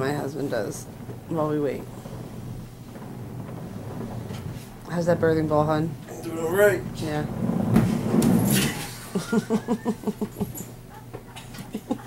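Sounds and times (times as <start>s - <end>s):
rustling: 0.0s - 11.0s
person laughing: 9.0s - 10.4s, 11.6s - 12.0s.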